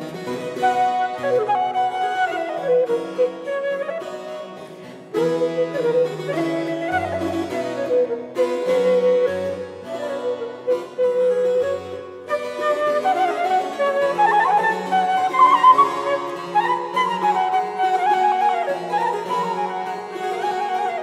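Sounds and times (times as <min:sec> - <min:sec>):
keyboard accompaniment: 0:00.0 - 0:21.0
flute playing: 0:00.4 - 0:21.0.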